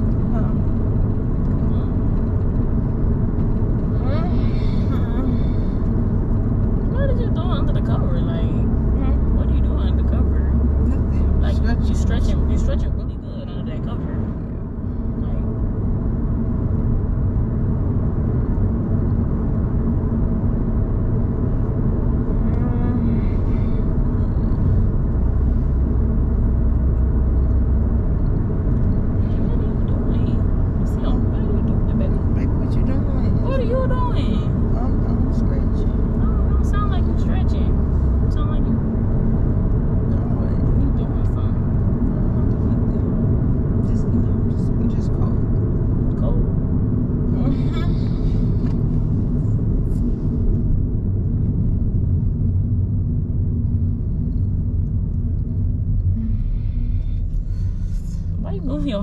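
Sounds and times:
road and engine rumble inside car: 0:00.0 - 0:59.0.

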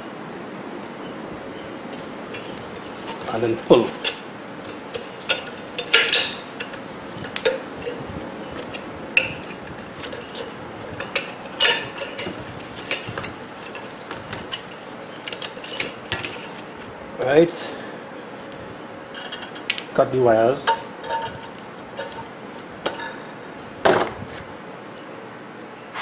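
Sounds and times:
metal clanks: 0:01.0 - 0:16.8
metal parts clinking and knocking: 0:01.9 - 0:16.8.

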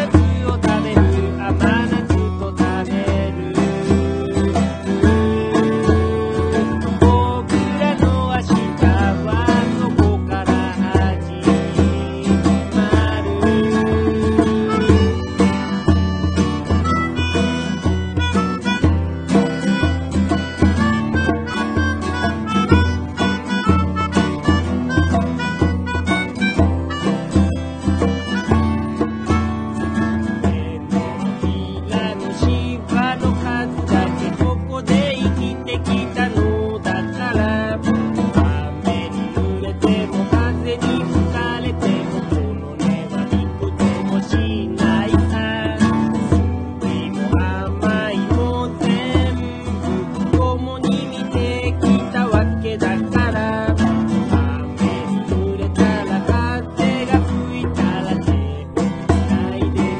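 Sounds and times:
acoustic band music: 0:00.0 - 0:59.9.

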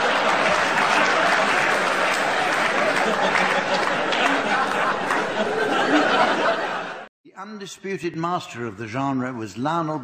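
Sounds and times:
audience applauding: 0:00.0 - 0:07.0
audience laughing: 0:00.0 - 0:07.1.

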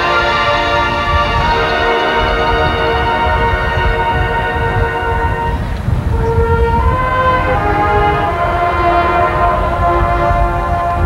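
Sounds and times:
marching band brass chords: 0:00.0 - 0:11.0.

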